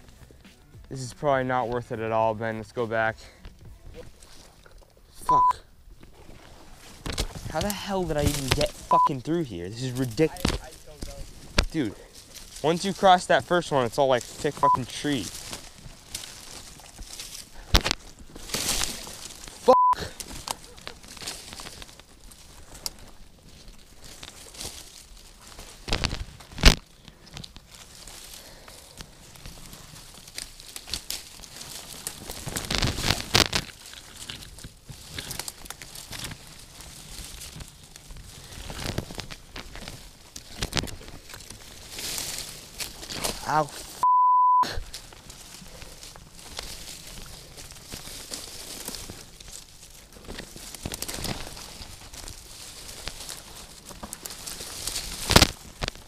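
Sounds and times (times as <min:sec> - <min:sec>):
footsteps in brush: 0:00.0 - 0:05.1, 0:05.9 - 0:44.0, 0:44.8 - 0:56.0
rustling of branches and dry leaves: 0:00.0 - 0:44.0, 0:44.7 - 0:56.0
censor bleep: 0:05.2 - 0:05.6, 0:08.9 - 0:09.1, 0:14.6 - 0:14.9, 0:19.7 - 0:20.1, 0:44.0 - 0:44.8
branch snapping: 0:06.9 - 0:08.9, 0:10.0 - 0:12.7, 0:15.3 - 0:19.6, 0:20.2 - 0:44.0, 0:44.8 - 0:56.0.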